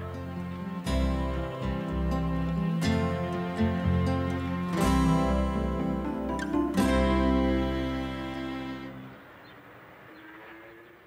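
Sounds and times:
guitar piece: 0.0s - 9.3s
traffic noise: 0.0s - 11.0s.

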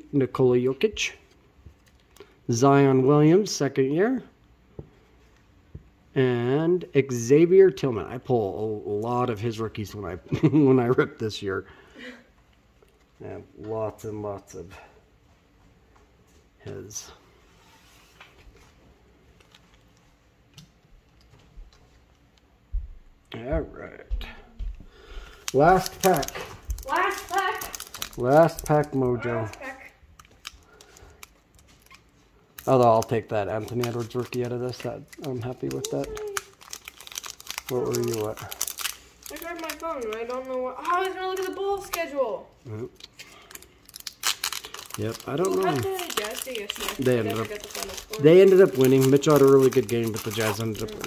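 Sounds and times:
trading cards clicking and rustling: 25.4s - 42.1s, 43.0s - 51.0s
foil wrapper crinkling and tearing: 25.4s - 42.2s, 42.8s - 51.0s.

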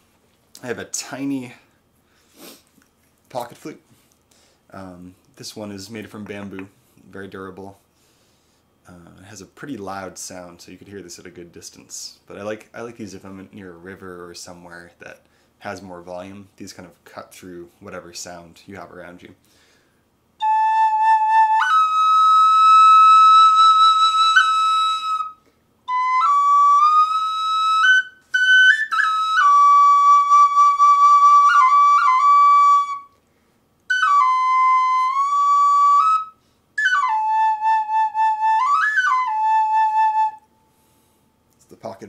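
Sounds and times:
breaths: 1.6s - 2.8s, 3.9s - 4.7s, 7.9s - 8.8s, 15.2s - 15.6s, 19.4s - 20.1s, 25.4s - 25.7s, 33.2s - 33.7s, 36.4s - 36.7s, 40.6s - 41.4s
bamboo flute high notes: 20.4s - 33.1s, 33.9s - 40.8s.

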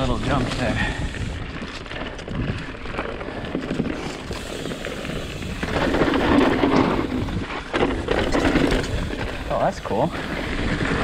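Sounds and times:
bike clattering: 0.0s - 11.0s
tyres crunching over dirt and stones: 0.0s - 11.0s
wind rumble on microphone: 0.0s - 11.0s.

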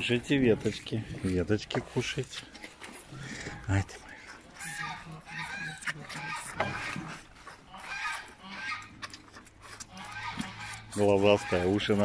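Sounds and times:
moose calves nasal calls: 2.3s - 12.0s.

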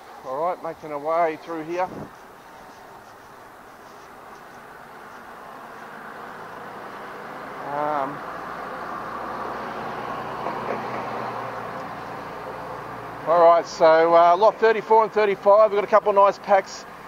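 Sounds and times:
steady vehicle noise: 0.0s - 17.0s.

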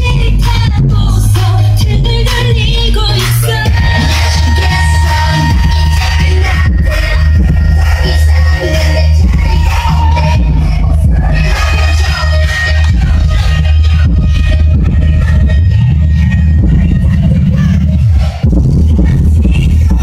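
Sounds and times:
loud music with heavy bass: 0.0s - 20.0s.

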